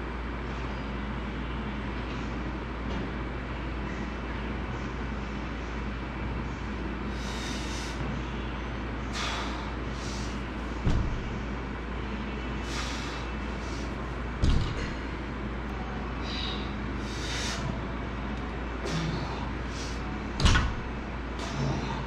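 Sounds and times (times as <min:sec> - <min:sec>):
steady background hum: 0:00.0 - 0:22.0
short breaths: 0:09.1 - 0:10.5, 0:12.6 - 0:13.9, 0:16.2 - 0:17.7
barbell thudding onto floor: 0:10.8 - 0:11.3, 0:14.4 - 0:15.0.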